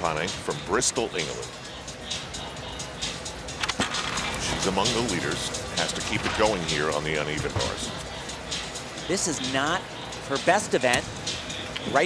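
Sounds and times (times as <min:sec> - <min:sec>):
arena music: 0:00.0 - 0:12.0.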